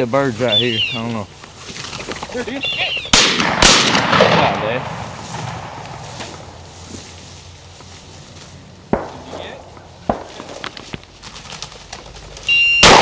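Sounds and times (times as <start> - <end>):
distant shotgun shots: 3.1 - 6.6, 8.9 - 10.7, 12.8 - 13.0.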